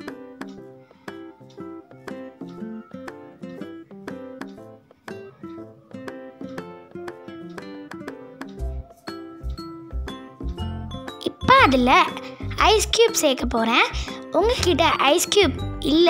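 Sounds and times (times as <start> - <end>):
plucked string melody: 0.0 - 16.0.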